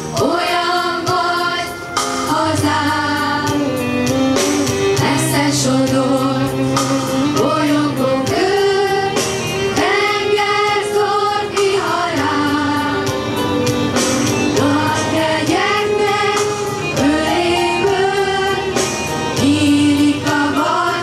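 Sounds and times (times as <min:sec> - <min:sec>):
children's choir singing: 0:00.0 - 0:21.0.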